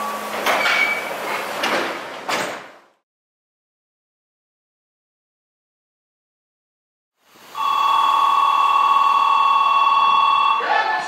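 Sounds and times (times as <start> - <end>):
electronic departure bell ringing: 7.6 - 10.9.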